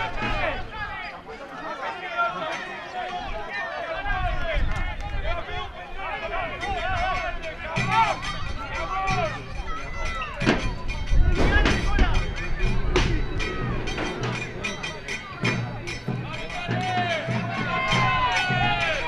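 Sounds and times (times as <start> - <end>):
drum beats: 6.5 - 19.0
steady low notes: 10.8 - 19.0.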